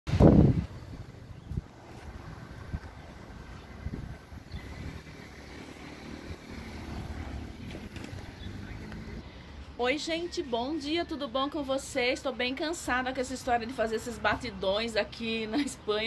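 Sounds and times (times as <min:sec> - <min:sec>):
wind on microphone: 0:00.1 - 0:09.2
faint passing traffic: 0:00.2 - 0:16.0.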